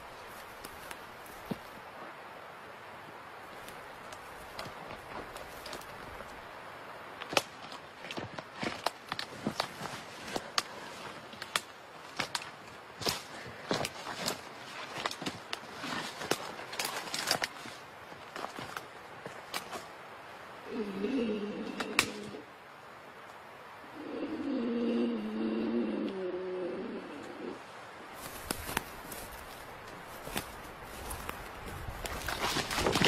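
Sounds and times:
steady hiss: 0:00.0 - 0:33.0
twigs snapping: 0:07.2 - 0:19.9, 0:21.8 - 0:22.4, 0:28.2 - 0:33.0.

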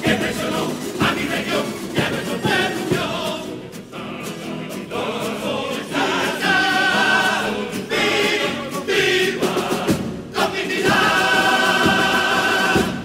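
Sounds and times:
chorus singing: 0:00.0 - 0:13.0
plucked guitars: 0:00.0 - 0:13.0.

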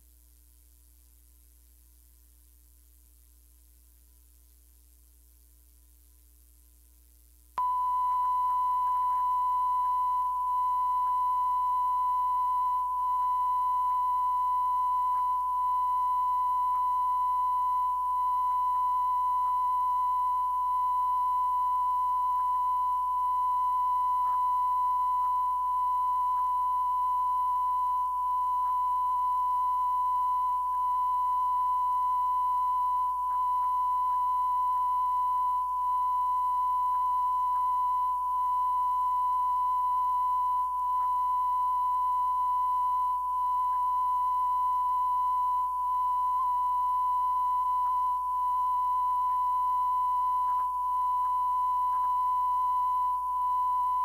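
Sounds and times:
sine-wave test tone: 0:00.0 - 0:54.0
tape hiss: 0:00.0 - 0:54.0
low hum: 0:07.6 - 0:53.9.

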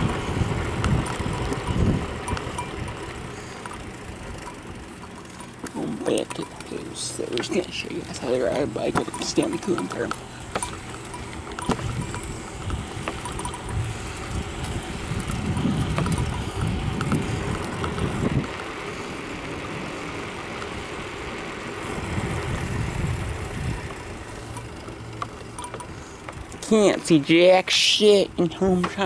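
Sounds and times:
wind buffeting microphone: 0:00.0 - 0:03.3, 0:06.0 - 0:20.1, 0:21.8 - 0:24.7
bike rattles and clicks: 0:00.0 - 0:29.0
tyre noise on asphalt: 0:00.0 - 0:29.0.

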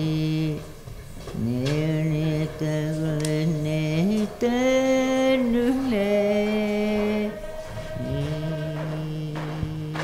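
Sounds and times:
voices chanting low notes: 0:00.0 - 0:10.0.

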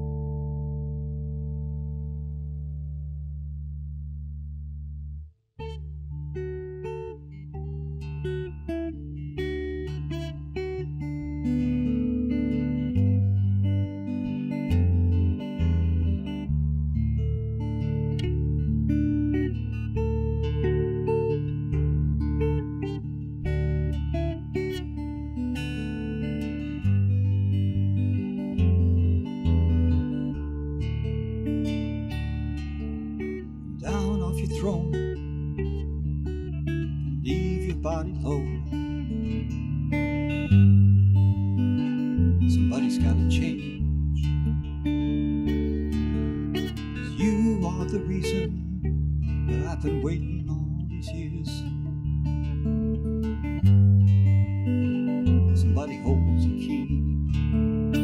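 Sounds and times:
fingerstyle guitar: 0:00.0 - 0:58.0.

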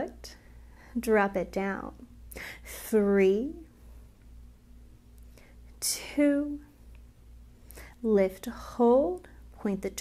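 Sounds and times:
faint steady hum: 0:00.0 - 0:10.0
woman counting: 0:01.0 - 0:02.1, 0:02.7 - 0:03.7, 0:05.8 - 0:06.7, 0:08.0 - 0:10.0.

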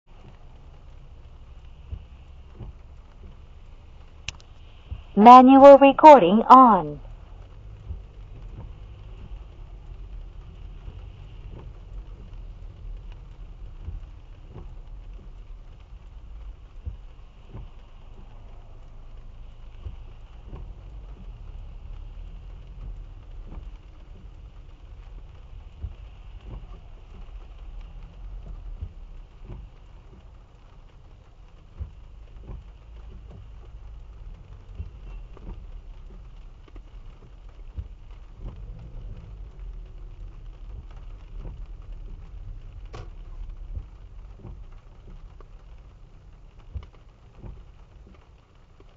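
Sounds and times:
car engine low rumble: 0:00.0 - 0:48.9
rain pattering on car roof: 0:00.0 - 0:48.9
sharp raindrop ticks: 0:00.1 - 0:48.9.

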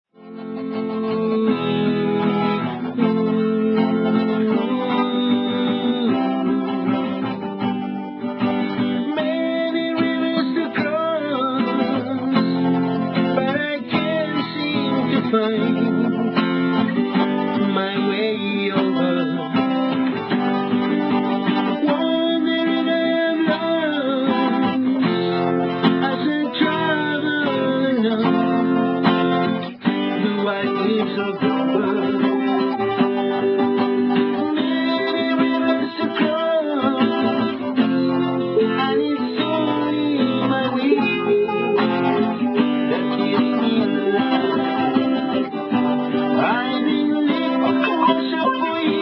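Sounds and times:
acoustic guitar strumming: 0:00.1 - 0:49.0
man singing: 0:00.2 - 0:07.7, 0:08.3 - 0:49.0.

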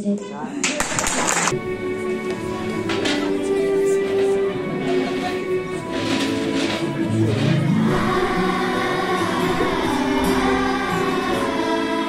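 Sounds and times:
children's choir singing: 0:01.5 - 0:12.0.

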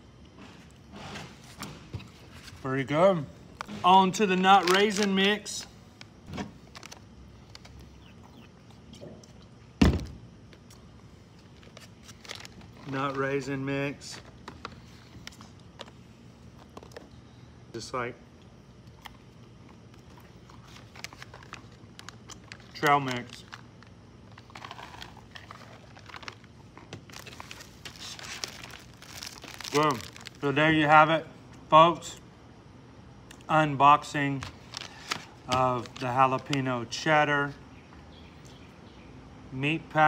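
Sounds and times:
food pouch crinkling: 0:04.3 - 0:08.1, 0:11.3 - 0:13.4, 0:18.8 - 0:30.6, 0:34.4 - 0:36.6.

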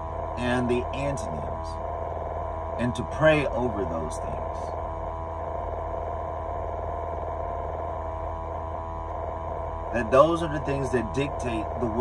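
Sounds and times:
steady high tones: 0:00.0 - 0:12.0.

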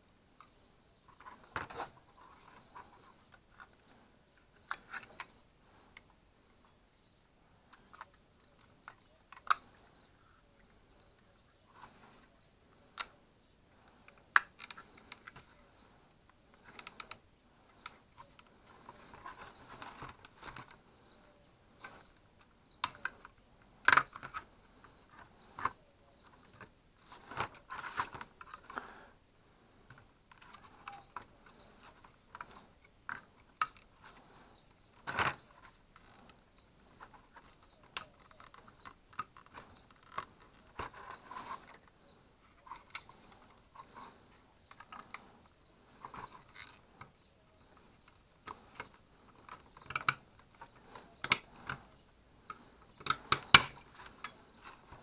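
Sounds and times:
plastic clicks and knocks: 0:52.5 - 0:55.0.

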